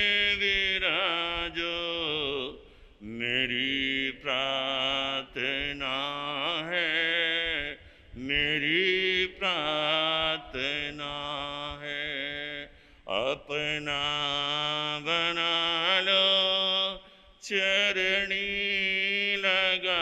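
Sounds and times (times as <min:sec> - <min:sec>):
man singing unaccompanied: 0:00.0 - 0:20.0.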